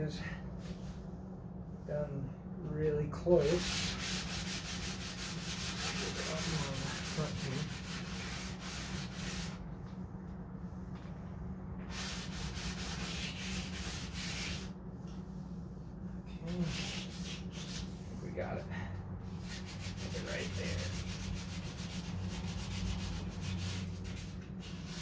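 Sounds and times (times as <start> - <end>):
hand rubbing on fiberglass: 3.4 - 10.0, 11.8 - 18.6, 19.3 - 25.0.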